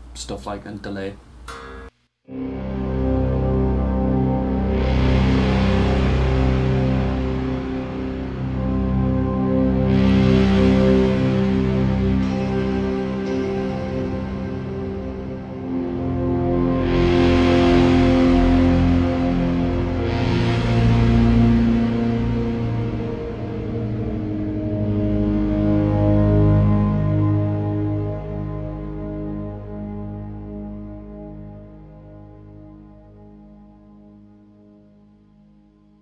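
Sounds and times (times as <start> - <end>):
droning electric guitar with fuzz: 1.5 - 35.8.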